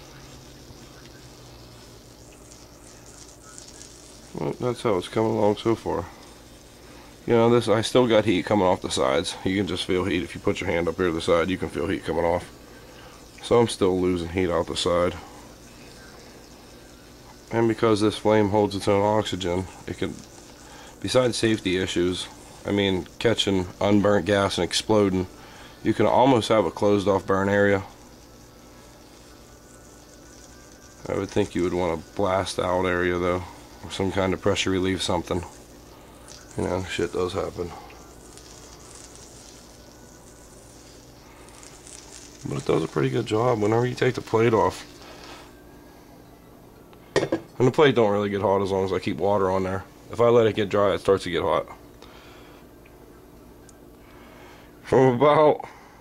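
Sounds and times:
burner hiss: 0.0s - 45.9s
low steady hum: 0.0s - 56.0s.

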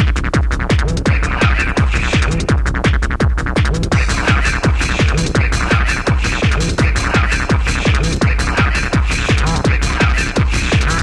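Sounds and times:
dense synth sounds: 0.0s - 11.0s
fast kick drum: 0.0s - 11.0s.

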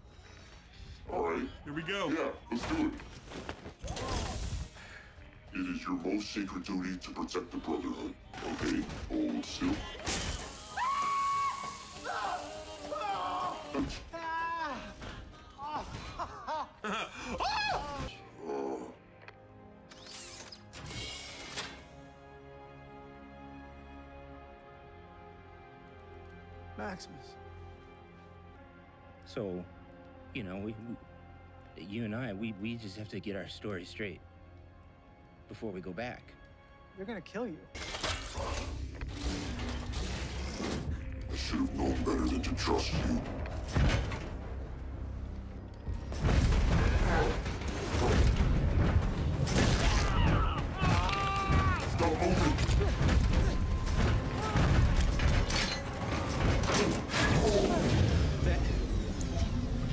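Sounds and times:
background music: 0.0s - 59.9s
mechanical servo sounds: 19.9s - 21.9s
mechanical creaking and grinding: 37.8s - 41.3s, 51.8s - 59.9s.

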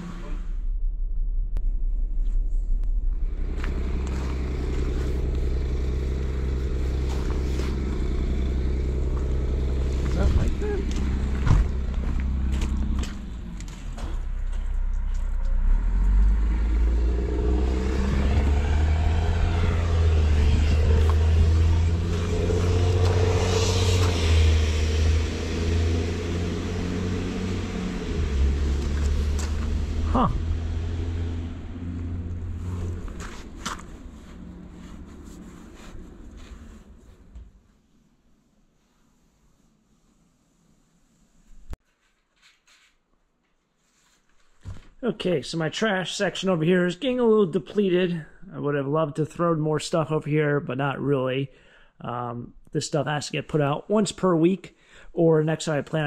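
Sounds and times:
vehicle engine running: 0.0s - 37.5s.

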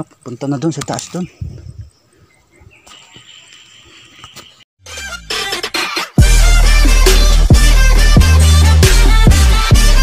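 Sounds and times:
music: 4.8s - 10.0s.

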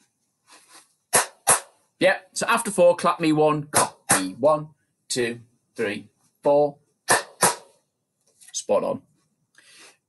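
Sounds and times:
sharp hand claps: 7.1s - 7.7s.

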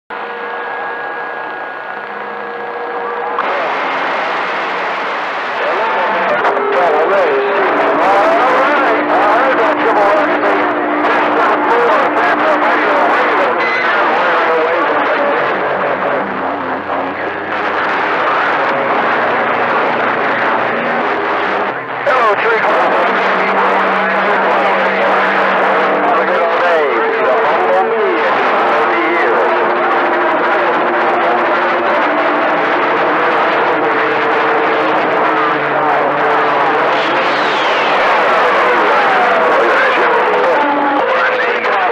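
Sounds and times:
radio static hiss: 0.1s - 41.9s.

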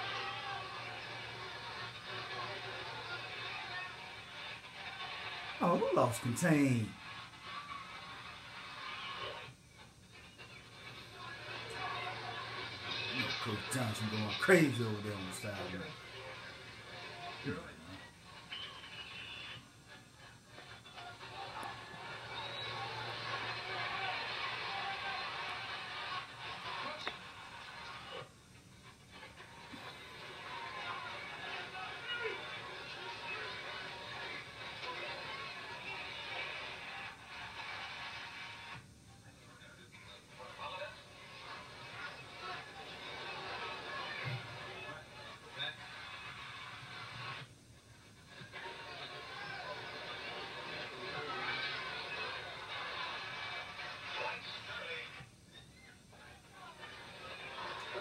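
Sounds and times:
television music: 0.0s - 58.0s
voices on television: 0.0s - 58.0s.

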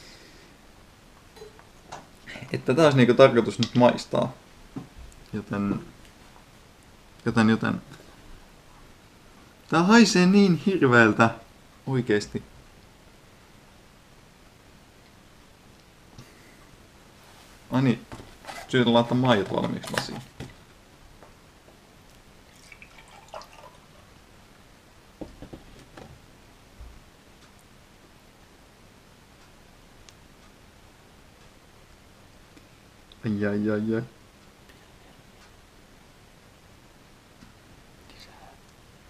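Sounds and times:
milk pouring into a glass: 22.5s - 24.2s
faint tick: 29.4s - 30.6s
soft whisper or breath: 38.0s - 38.7s.

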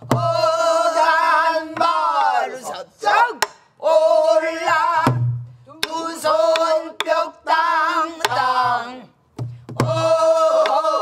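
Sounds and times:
voices singing with sliding glides: 0.0s - 9.2s, 9.8s - 11.0s.

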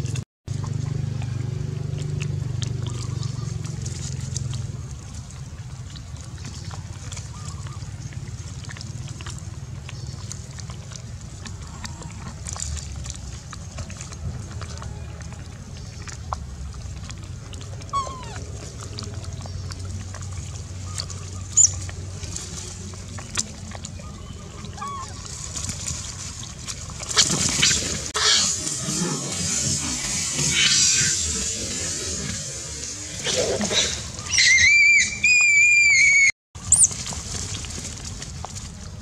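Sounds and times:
baby monkey screaming: 17.9s - 18.4s, 24.8s - 25.2s, 33.8s - 36.9s.

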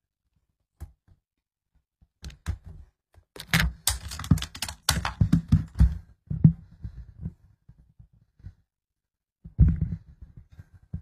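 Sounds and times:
handling clicks and thuds: 3.4s - 6.5s.

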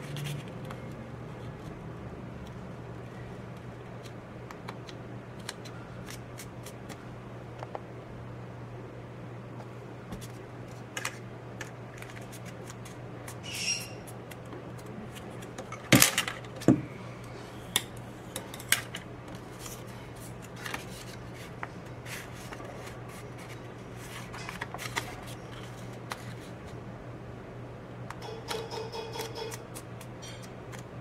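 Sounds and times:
steady low hum: 0.0s - 31.0s
paper rustling and creasing: 10.2s - 13.4s, 19.3s - 26.8s.

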